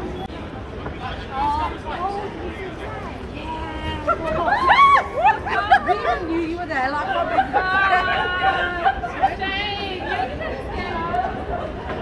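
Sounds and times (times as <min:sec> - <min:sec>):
women chattering: 0:03.0 - 0:12.0
women laughing: 0:03.9 - 0:12.0.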